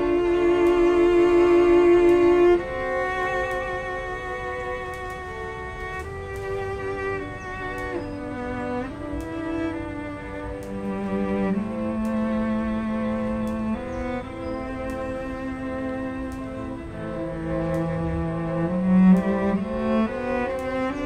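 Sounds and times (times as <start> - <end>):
string quartet playing slow notes: 0.0 - 21.0.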